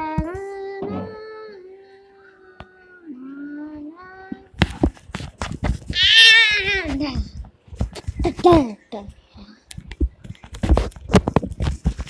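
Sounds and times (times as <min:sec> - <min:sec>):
child crying high-pitched: 0:06.0 - 0:06.9.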